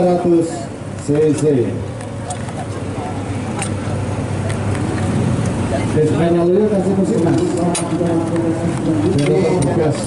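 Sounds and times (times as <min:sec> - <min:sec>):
faint voices: 0:00.0 - 0:10.0
low rumble of engines: 0:00.0 - 0:10.0.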